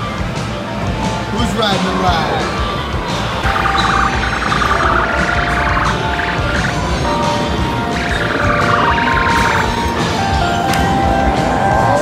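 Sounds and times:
electronic held tones: 3.4 - 10.1.

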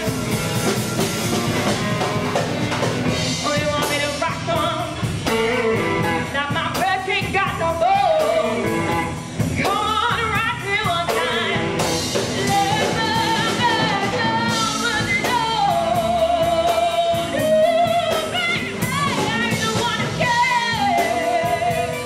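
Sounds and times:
bass guitar: 0.0 - 22.0
drum kit beat: 0.0 - 22.0
electric guitars: 0.0 - 22.0
woman singing: 3.2 - 22.0.

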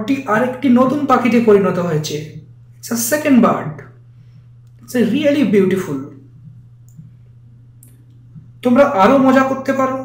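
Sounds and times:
low electrical hum: 0.0 - 10.0
faint clicks: 6.5 - 7.2.

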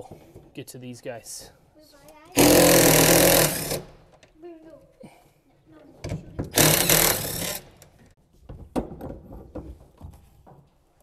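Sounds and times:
cordless drill running: 2.4 - 3.8, 6.6 - 7.6.

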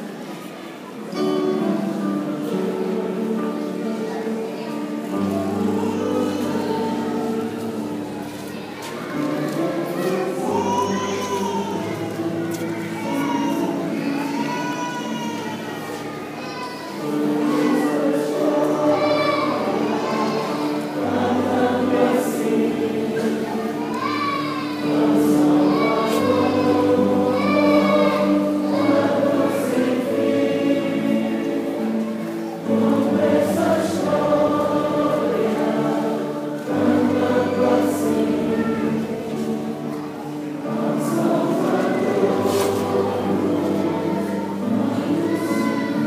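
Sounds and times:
church choir singing: 0.0 - 46.0.

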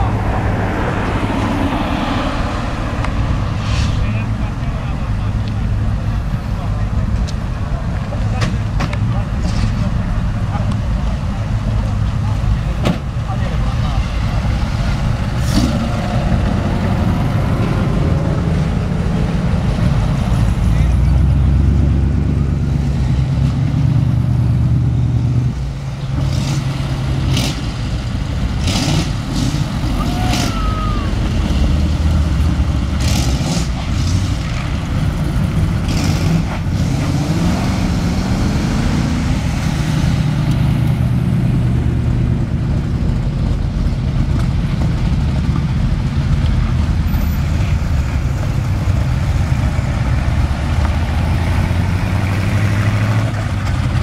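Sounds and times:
hot rod engines driving past: 0.0 - 54.0.

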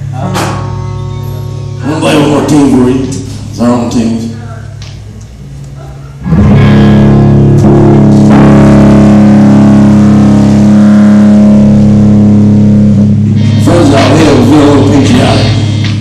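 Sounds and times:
bass guitar: 0.0 - 16.0
electric guitar chords: 0.0 - 16.0.

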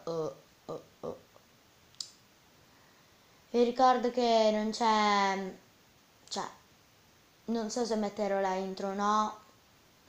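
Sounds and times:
faint room hiss: 0.0 - 10.0
sharp click: 1.9 - 2.2.

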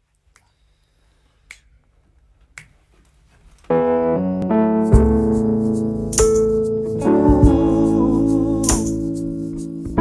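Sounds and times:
finger snaps: 0.2 - 0.6, 1.4 - 2.9.

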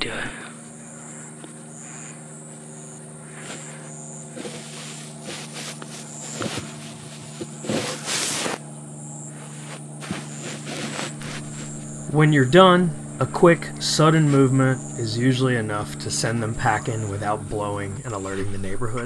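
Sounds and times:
low hum: 0.0 - 19.0
pulsing insect drone: 0.0 - 19.0
hissing rustle: 3.3 - 8.6, 9.3 - 12.2.

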